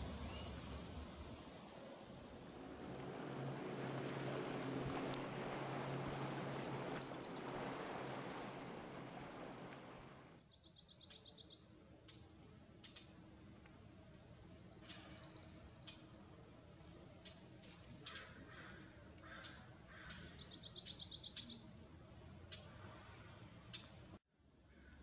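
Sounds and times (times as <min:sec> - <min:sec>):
outdoor background noise: 0:00.0 - 0:25.0
small bird chirping and trilling: 0:07.0 - 0:07.6, 0:10.4 - 0:11.7, 0:14.2 - 0:16.0, 0:20.1 - 0:21.6.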